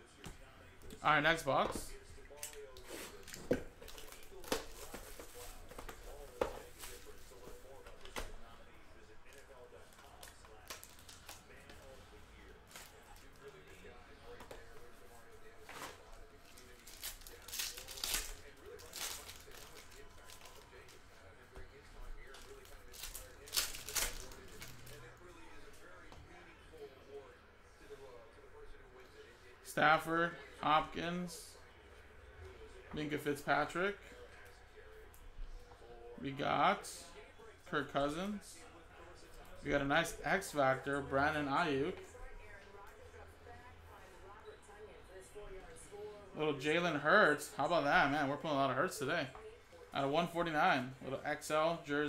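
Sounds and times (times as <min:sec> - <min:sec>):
foil wrappers crinkling and tearing: 0:15.9 - 0:21.0, 0:22.2 - 0:25.0.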